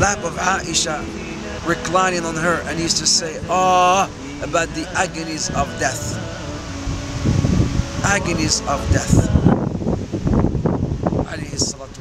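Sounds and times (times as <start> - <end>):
background hiss: 0.0 - 12.0
low rumbling gusts: 0.0 - 12.0
wind buffeting microphone: 0.0 - 12.0.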